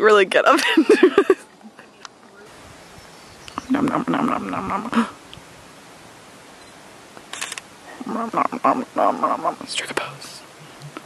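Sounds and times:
person whispering: 9.2 - 10.5.

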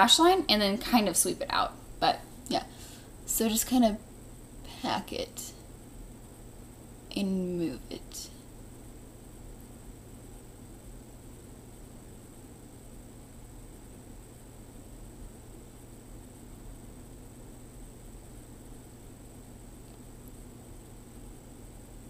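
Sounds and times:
faint hum: 0.0 - 22.0
low hiss: 0.0 - 22.0.

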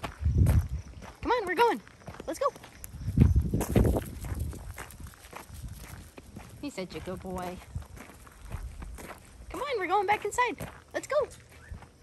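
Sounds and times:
footsteps crunching on gravel: 0.0 - 12.0.

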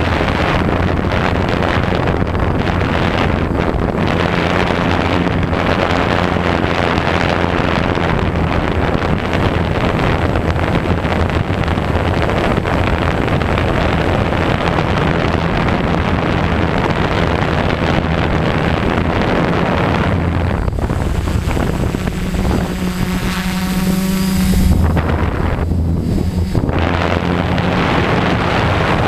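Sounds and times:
drone motors humming: 0.0 - 29.0
wind noise on microphone: 0.0 - 29.0.

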